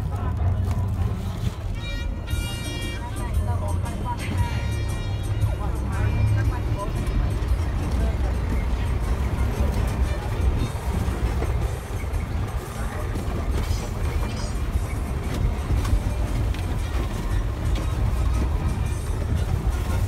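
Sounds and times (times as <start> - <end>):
minibus engine rumble: 0.0 - 20.0
music: 0.0 - 20.0
voices: 0.0 - 20.0.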